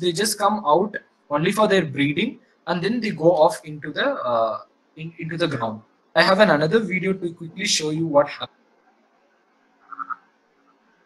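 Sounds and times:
frog clucking: 0:09.9 - 0:10.2.

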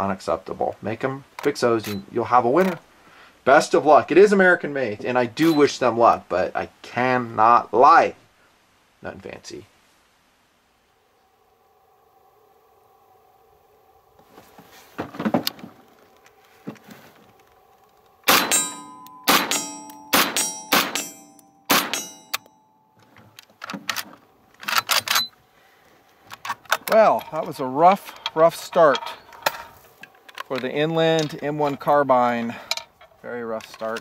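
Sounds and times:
person talking: 0:03.5 - 0:08.2, 0:26.9 - 0:29.2, 0:30.5 - 0:34.0
rifle shots with ringing tail: 0:18.2 - 0:22.5.

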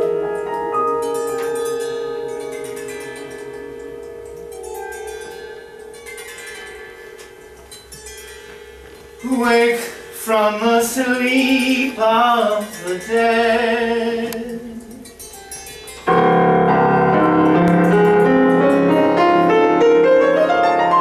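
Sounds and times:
harp chords and plucked notes: 0:00.0 - 0:21.0
piano chords: 0:00.0 - 0:21.0
person singing: 0:09.2 - 0:15.2.

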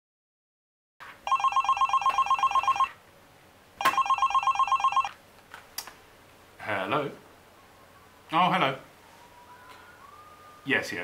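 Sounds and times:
desk telephone ringing: 0:01.2 - 0:03.0, 0:03.8 - 0:05.2.

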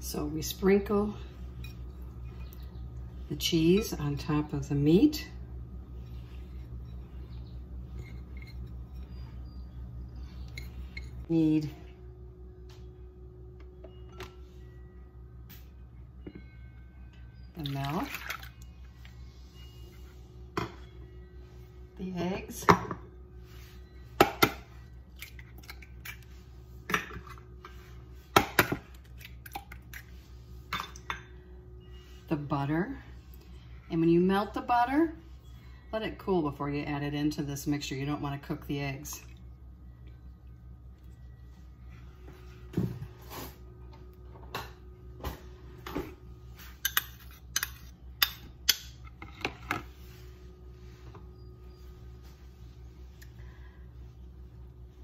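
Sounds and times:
low steady hum: 0:00.0 - 0:55.0
spoon scraping metal bowl: 0:05.8 - 0:09.6.

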